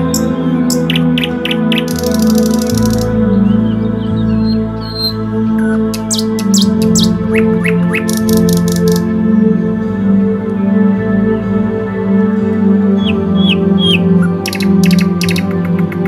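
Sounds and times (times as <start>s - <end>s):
birds chirping: 0.0s - 9.1s, 12.8s - 16.0s
soft background music: 0.0s - 16.0s.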